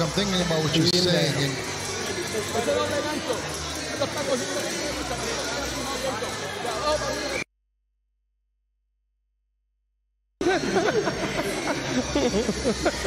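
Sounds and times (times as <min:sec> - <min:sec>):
crowd noise: 0:00.0 - 0:07.5, 0:10.4 - 0:13.0.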